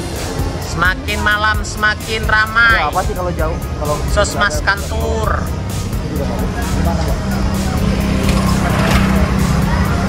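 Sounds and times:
music with steady beat: 0.0 - 10.0
motorcycle engine passing: 5.8 - 10.0.

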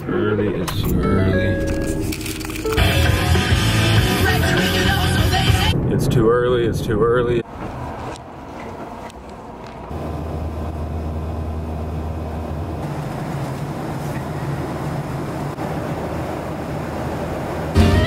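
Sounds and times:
airliner cabin engine drone: 8.6 - 18.0.

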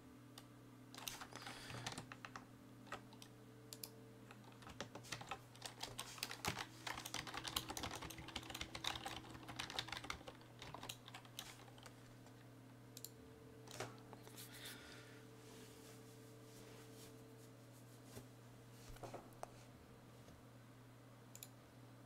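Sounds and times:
typing on keyboard: 1.0 - 3.3, 4.4 - 11.9.

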